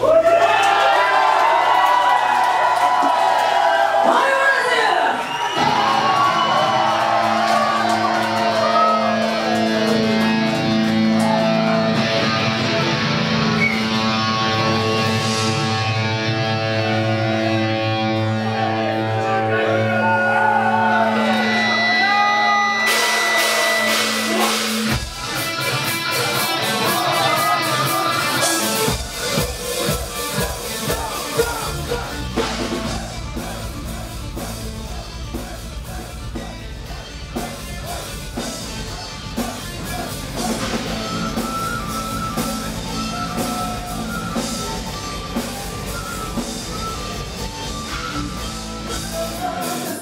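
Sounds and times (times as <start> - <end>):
heavy drums and bass: 22.7 - 50.0.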